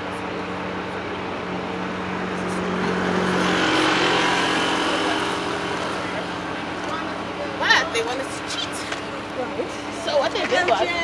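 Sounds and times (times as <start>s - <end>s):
car passing by: 1.8s - 10.0s.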